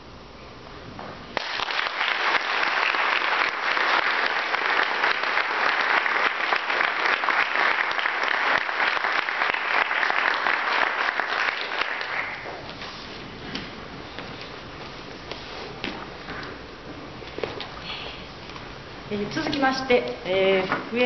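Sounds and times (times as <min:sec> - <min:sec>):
audience applauding: 0:01.4 - 0:12.5.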